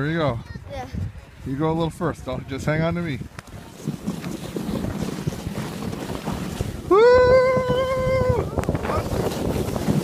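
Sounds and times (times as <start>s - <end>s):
wind rushing over microphone: 0.0s - 10.0s
sled sliding over snow: 1.5s - 10.0s.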